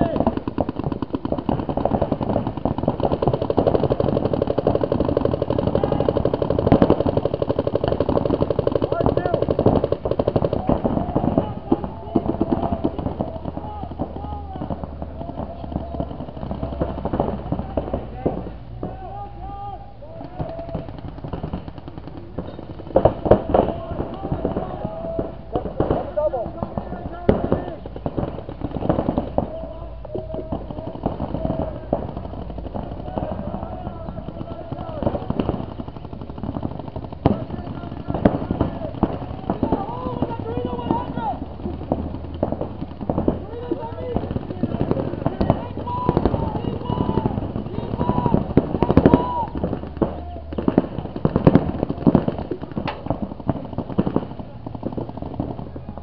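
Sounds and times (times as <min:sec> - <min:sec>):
players shouting: 0:00.0 - 0:00.6, 0:01.2 - 0:56.0
paintball markers firing: 0:00.0 - 0:19.2, 0:20.1 - 0:56.0.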